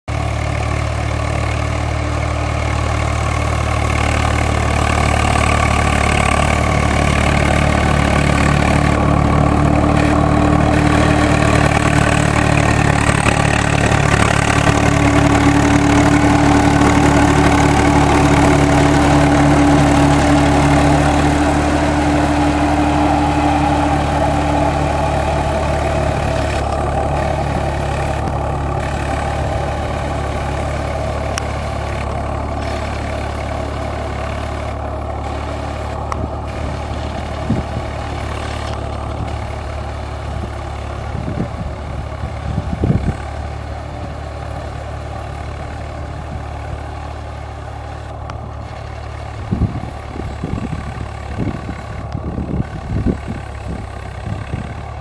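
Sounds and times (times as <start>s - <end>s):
tractor diesel engine under load: 0.0s - 55.0s.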